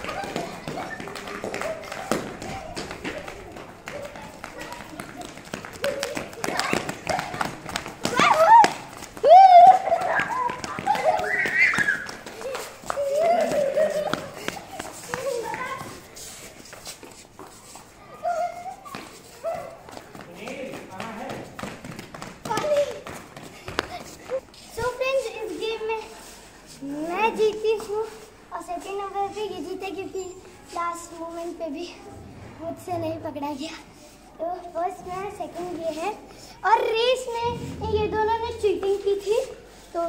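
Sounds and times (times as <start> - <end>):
children shrieking and laughing: 0.0 - 16.5, 17.7 - 20.0
footsteps slapping on stone floor: 0.0 - 29.7.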